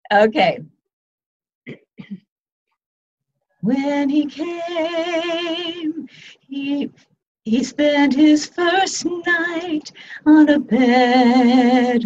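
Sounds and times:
woman clearing her throat: 1.7s - 2.3s.

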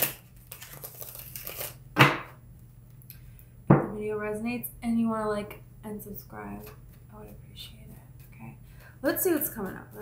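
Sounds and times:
cards shuffling: 0.0s - 1.8s
papery rustling: 0.0s - 1.8s.

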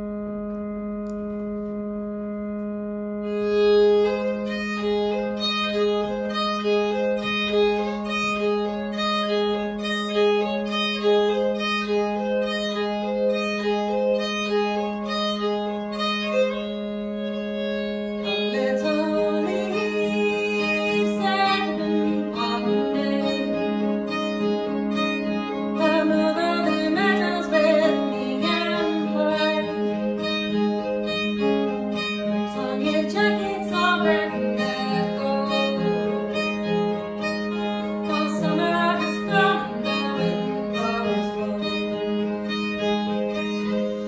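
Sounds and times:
fiddle playing: 0.0s - 44.0s
low drone note: 0.0s - 44.0s.

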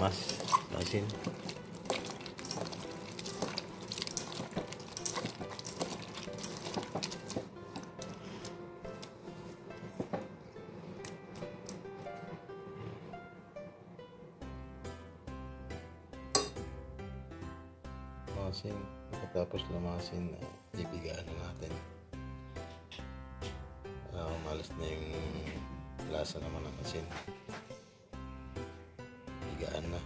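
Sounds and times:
wet squelching of kneaded vegetables: 0.0s - 9.3s
background music: 0.0s - 30.0s.

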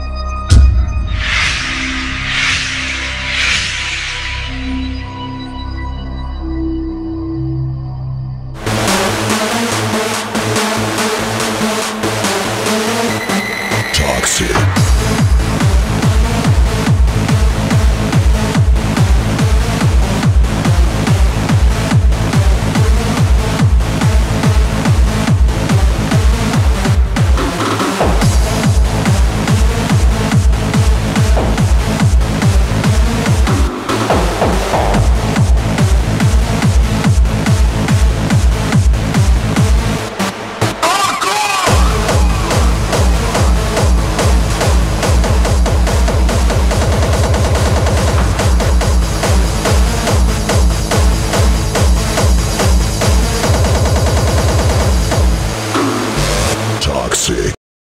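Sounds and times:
dense synth chords: 0.0s - 57.0s
heavy kick drum: 0.5s - 1.4s, 14.4s - 40.0s, 41.7s - 56.6s
hardstyle dance music: 8.6s - 57.6s.

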